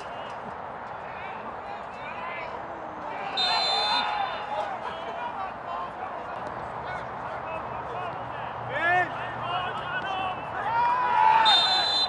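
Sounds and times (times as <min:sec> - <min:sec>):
footballers shouting: 0:01.0 - 0:12.0
loud rising-and-falling shout: 0:10.2 - 0:12.0.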